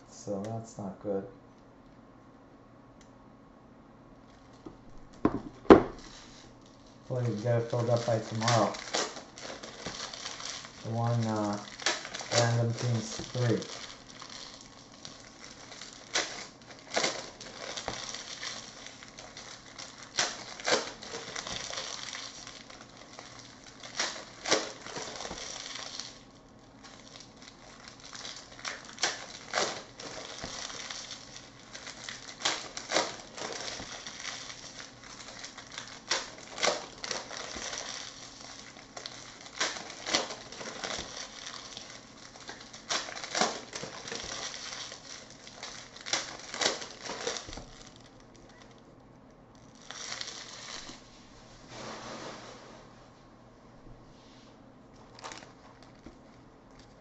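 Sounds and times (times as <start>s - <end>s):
crinkly rustle: 6.0s - 52.9s, 54.9s - 57.0s.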